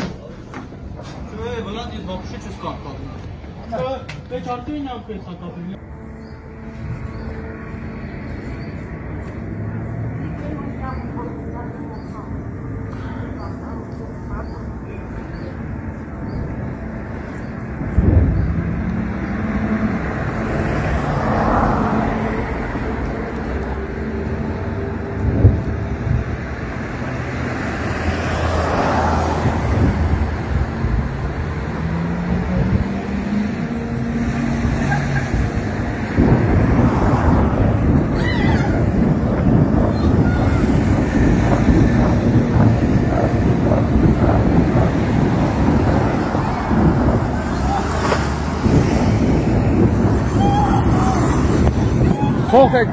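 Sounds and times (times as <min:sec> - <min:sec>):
steady outdoor rumble: 0:00.0 - 0:52.9
wind buffeting microphone: 0:05.8 - 0:52.9
distant artillery blasts: 0:37.6 - 0:52.5.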